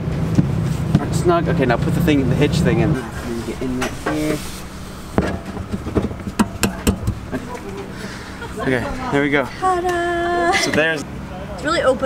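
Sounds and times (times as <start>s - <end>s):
steel knocking on steel: 5.2s - 7.5s.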